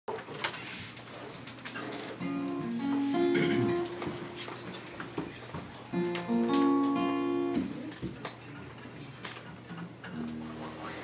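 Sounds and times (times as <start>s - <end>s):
acoustic guitar chords: 2.1s - 8.0s, 10.1s - 11.0s.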